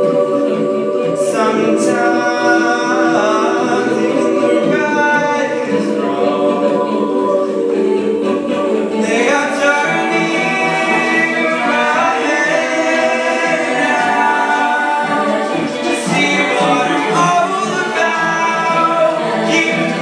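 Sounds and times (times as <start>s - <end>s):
choir harmonies: 0.0s - 20.0s.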